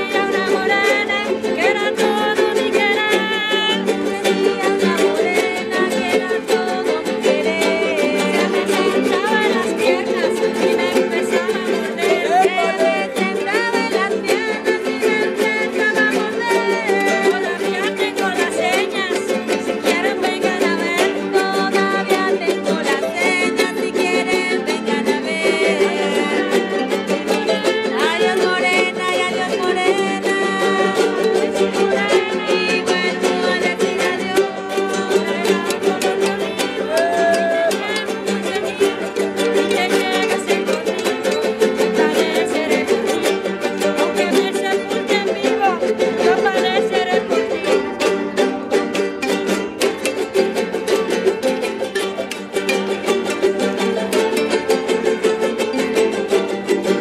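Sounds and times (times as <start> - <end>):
man singing: 0.0 - 48.1
small guitars strummed: 0.0 - 57.0
woman singing: 0.0 - 57.0.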